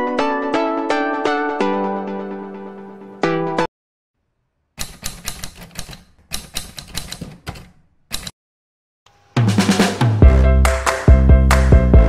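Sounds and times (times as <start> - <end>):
typewriter keystroke clicks: 4.8 - 8.3.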